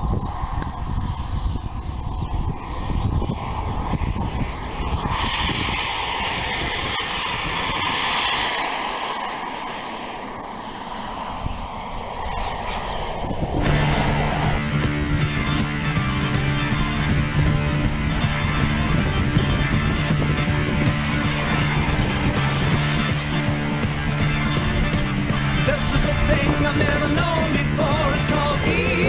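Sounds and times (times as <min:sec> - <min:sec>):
model jet turbine rushing: 0:00.0 - 0:29.0
music: 0:13.6 - 0:29.0.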